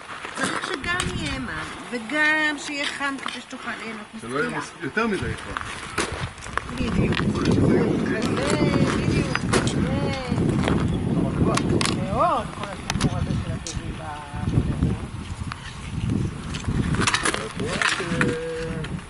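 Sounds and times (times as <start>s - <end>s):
people talking and calling out: 0.4s - 19.0s.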